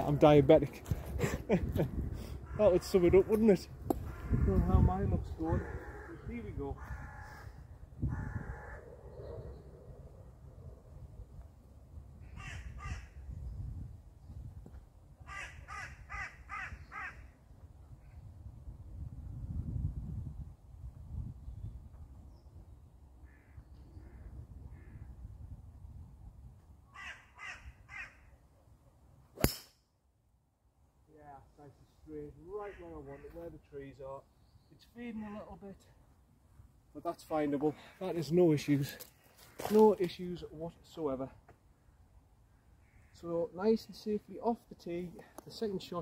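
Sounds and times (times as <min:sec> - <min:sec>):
crows cawing: 0:02.3 - 0:09.0, 0:12.2 - 0:13.2, 0:15.2 - 0:17.4, 0:23.2 - 0:25.1, 0:26.9 - 0:28.4, 0:32.4 - 0:33.6, 0:42.8 - 0:43.2
golf club striking ball: 0:29.4 - 0:29.8.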